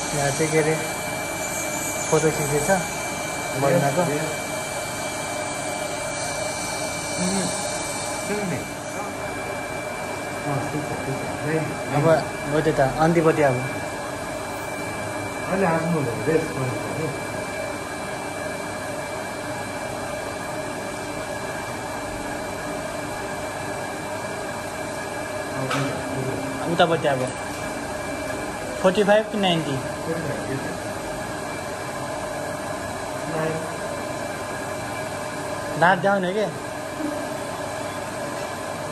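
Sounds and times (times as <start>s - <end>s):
electric machine whirring: 0.0s - 38.9s.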